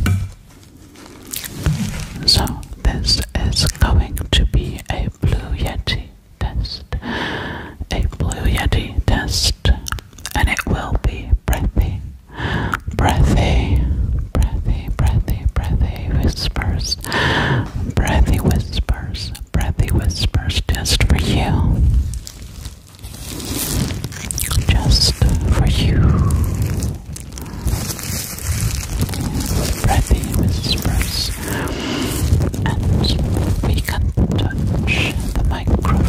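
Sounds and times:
breath rumbling on microphone: 0:00.0 - 0:05.6, 0:06.9 - 0:36.0
close breathy whispering: 0:01.3 - 0:22.0, 0:24.4 - 0:36.0.

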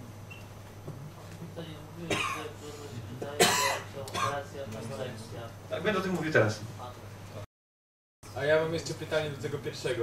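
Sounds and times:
person coughing: 0:02.1 - 0:02.6, 0:03.4 - 0:04.4.

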